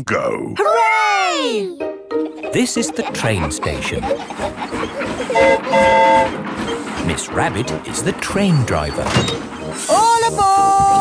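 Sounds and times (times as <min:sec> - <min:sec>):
cartoon steam train whistle: 0:05.3 - 0:06.4.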